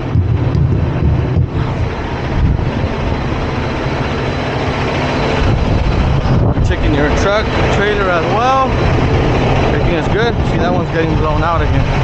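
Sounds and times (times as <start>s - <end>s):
diesel truck engine idling: 0.0s - 12.0s
wind buffeting microphone: 0.0s - 12.0s.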